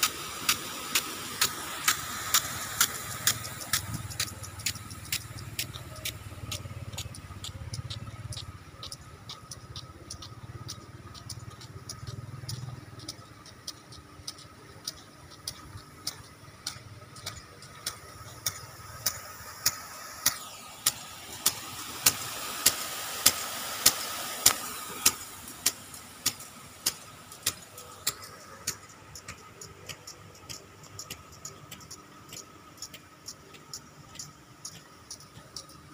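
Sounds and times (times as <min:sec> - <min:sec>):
sprinkler arm ticking: 0:00.0 - 0:35.9
water spray rushing: 0:00.0 - 0:35.9.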